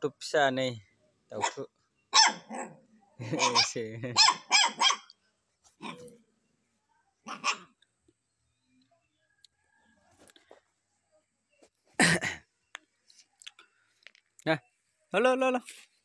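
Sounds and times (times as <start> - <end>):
puppy yapping: 1.4 - 5.1, 7.2 - 7.8.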